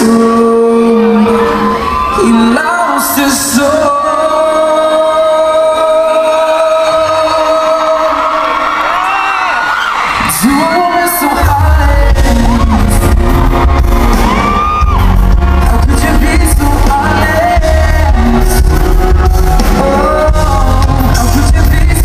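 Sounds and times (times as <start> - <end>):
audience whooping and screaming: 0.0 - 4.6, 6.2 - 22.0
man singing: 0.0 - 8.7, 10.2 - 22.0
heavy bass and drum beat: 10.2 - 22.0.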